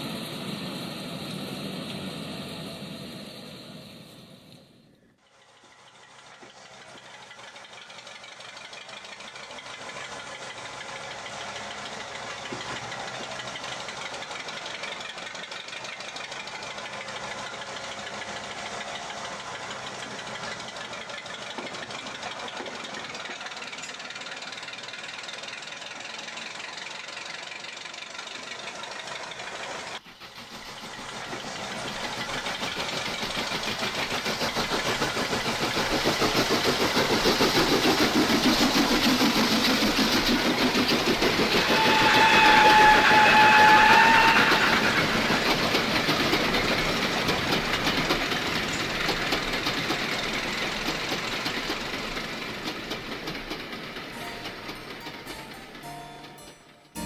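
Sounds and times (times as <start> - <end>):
diesel train: 0.0 - 57.0
diesel engine knocking: 5.4 - 55.7
train horn: 41.2 - 46.1.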